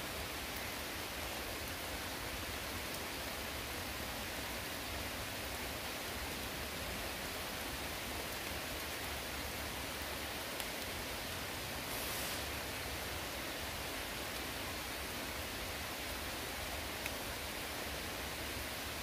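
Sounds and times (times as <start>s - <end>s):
rain on vegetation: 0.0s - 19.0s.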